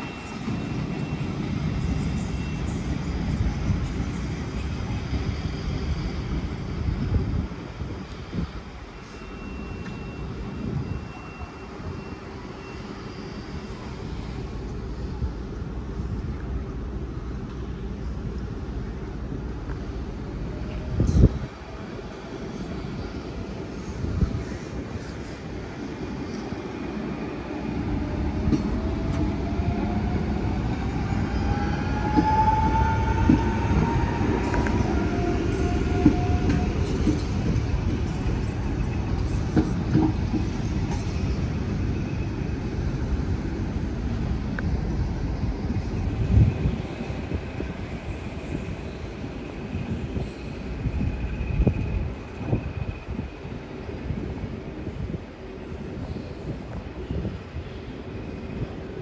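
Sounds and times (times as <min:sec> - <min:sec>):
train rumble: 0:00.0 - 0:59.0
train whine: 0:00.0 - 0:59.0.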